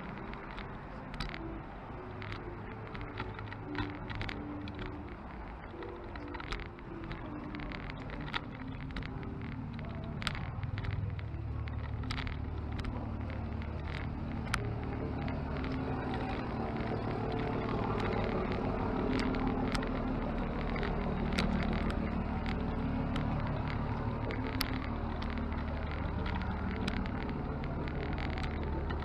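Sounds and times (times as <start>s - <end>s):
low motor rumble: 0.0s - 29.0s
sharp clicks: 0.0s - 29.0s.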